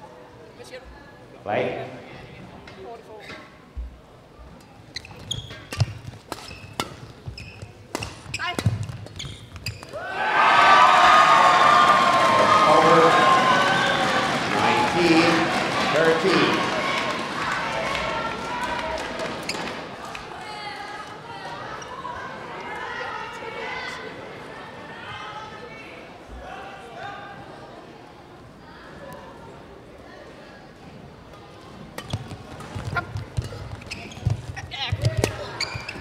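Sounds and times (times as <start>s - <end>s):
racket striking shuttlecock: 5.6s - 7.2s, 7.9s - 10.0s
spectators cheering and shouting: 9.9s - 24.4s
spectators clapping: 10.6s - 20.5s.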